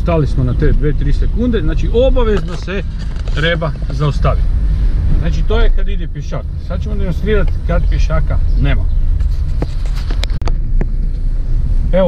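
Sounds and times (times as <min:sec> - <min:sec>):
car engine and road rumble: 0:00.0 - 0:12.0.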